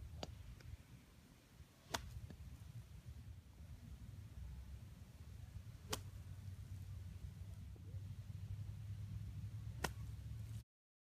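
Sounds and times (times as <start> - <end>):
golf club hitting sand and ball: 1.7 - 3.2, 4.7 - 10.6.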